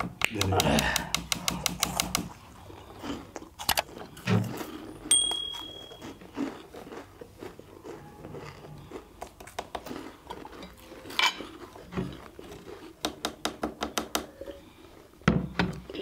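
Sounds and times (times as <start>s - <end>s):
chopsticks clicking on steel plates: 0.0s - 2.3s
chewing: 1.8s - 13.0s, 14.3s - 15.2s.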